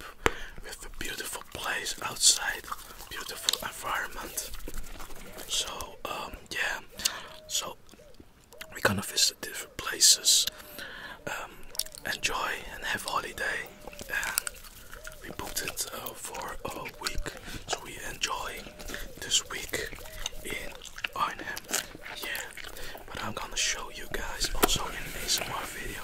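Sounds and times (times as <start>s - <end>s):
soft whispering: 0.0s - 8.0s, 8.6s - 26.0s
gum chewing mouth clicks: 1.3s - 5.9s, 6.9s - 8.8s, 11.6s - 12.4s, 13.0s - 25.5s.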